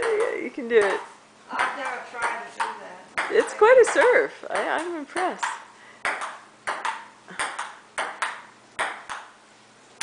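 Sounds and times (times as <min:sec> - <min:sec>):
table tennis ball clicking: 0:00.0 - 0:09.4.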